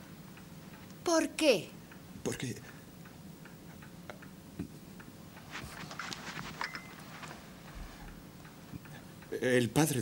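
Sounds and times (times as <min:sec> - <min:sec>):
faint ticking: 0:00.0 - 0:05.4.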